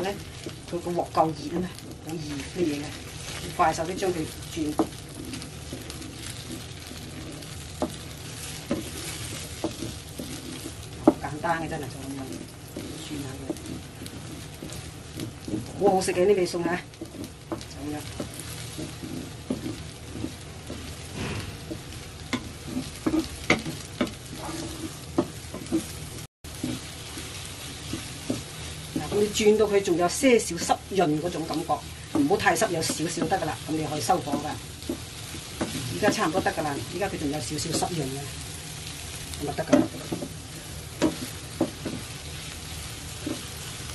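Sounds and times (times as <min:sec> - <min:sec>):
eggs sizzling: 0:00.0 - 0:43.9
spatula scraping a wok: 0:00.0 - 0:43.9.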